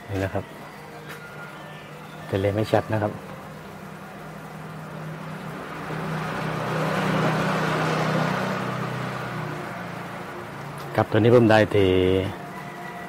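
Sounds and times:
vehicle passing by: 2.3 - 13.0.

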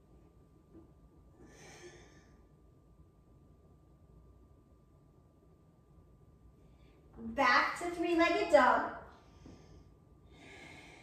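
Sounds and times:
woman breathing softly: 1.3 - 2.6, 9.1 - 11.0.

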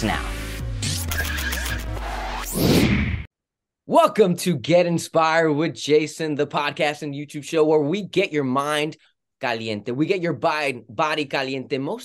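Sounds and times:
electronic music: 0.0 - 2.8.

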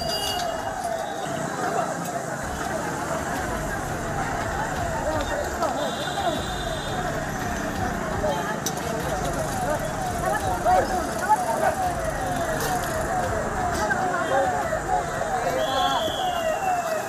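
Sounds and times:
people's voices: 0.0 - 17.0
street noise: 0.0 - 17.0.

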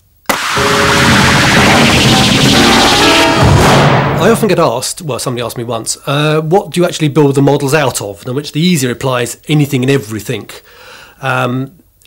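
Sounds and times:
loud dense hiss: 0.3 - 5.2.

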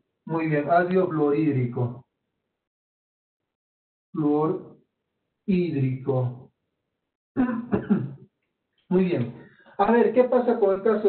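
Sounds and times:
person coughing: 7.4 - 8.2.

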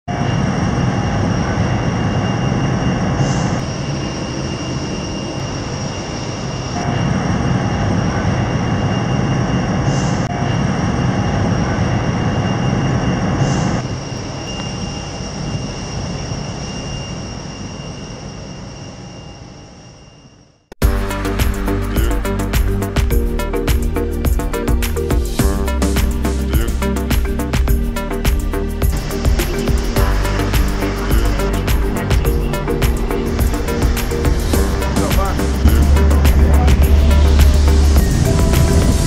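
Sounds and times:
aircraft roar with high whine: 0.1 - 39.0.

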